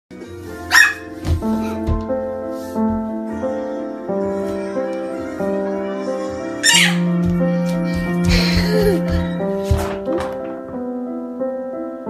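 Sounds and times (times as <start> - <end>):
piano music: 0.1 - 12.0.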